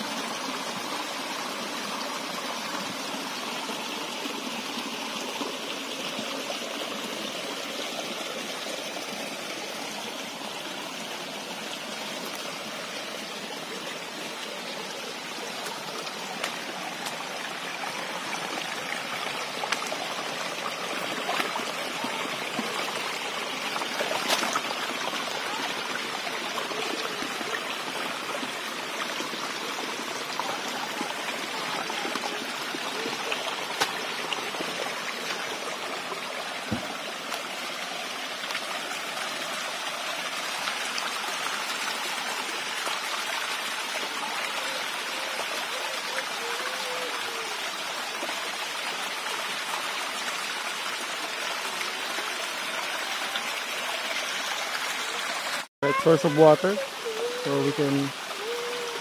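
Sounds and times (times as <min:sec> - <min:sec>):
stream running over rocks: 0:00.0 - 0:59.0.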